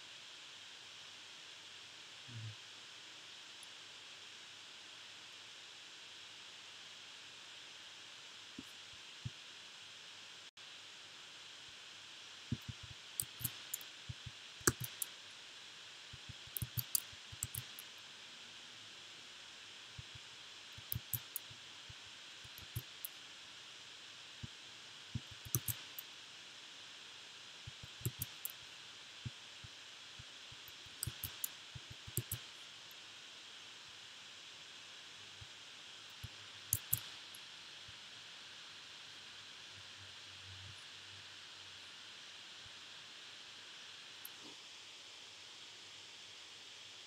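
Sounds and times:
steady faint hiss: 0.0 - 47.0
computer keyboard clicks: 12.5 - 15.1, 16.2 - 17.8, 20.8 - 21.4, 22.5 - 22.9, 25.2 - 25.9, 27.7 - 28.6, 30.9 - 32.4, 36.7 - 37.1
mouse clicks: 12.5 - 15.1, 16.2 - 17.9, 20.8 - 21.5, 22.5 - 23.2, 25.2 - 26.0, 27.7 - 28.6, 30.6 - 32.5, 36.2 - 37.2.

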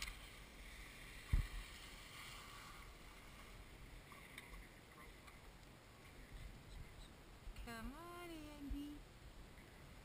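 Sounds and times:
skis gliding over snow: 0.0 - 3.8
wind on microphone: 1.1 - 1.8
low thump: 1.3 - 1.6.

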